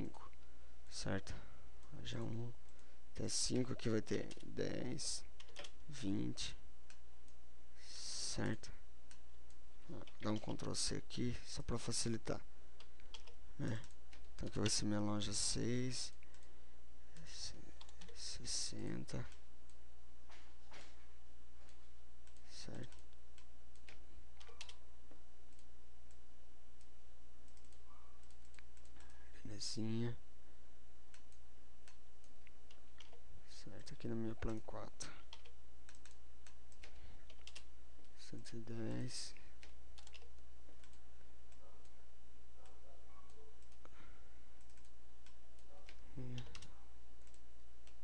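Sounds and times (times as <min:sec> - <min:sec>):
low electrical hum: 0:00.0 - 0:48.0.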